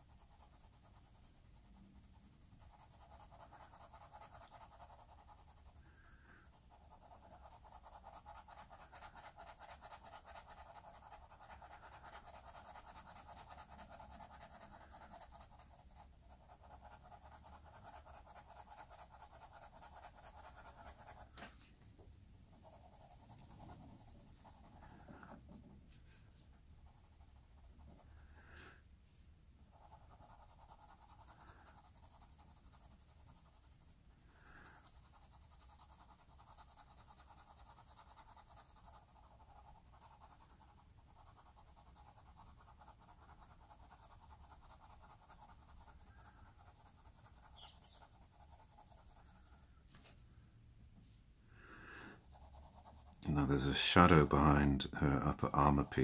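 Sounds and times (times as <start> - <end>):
pencil scratching on paper: 0.0 - 21.5, 22.4 - 28.8, 29.7 - 50.2, 52.0 - 56.0.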